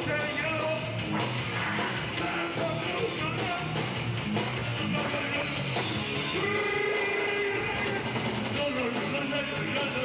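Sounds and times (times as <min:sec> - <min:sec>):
crowd noise: 0:00.0 - 0:10.0
heavy metal band playing: 0:00.0 - 0:10.0.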